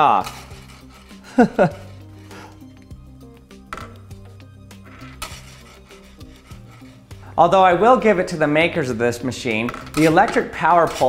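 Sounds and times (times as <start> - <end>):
soft background music: 0.0 - 11.0
person laughing: 1.2 - 2.6.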